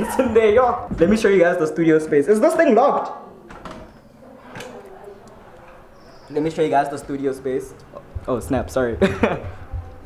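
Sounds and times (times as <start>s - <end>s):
faint voices: 0.0s - 10.0s.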